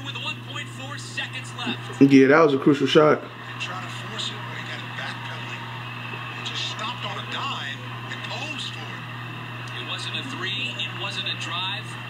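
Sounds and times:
commentator's voice: 0.0s - 5.6s, 9.7s - 12.0s
steady low hum: 0.0s - 12.0s.

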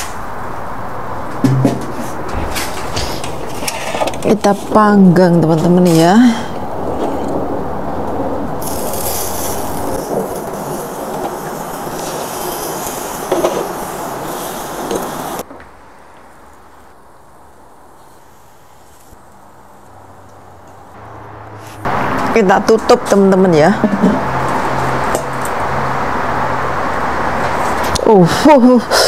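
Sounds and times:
steady rushing noise: 0.0s - 4.7s, 6.5s - 15.5s.

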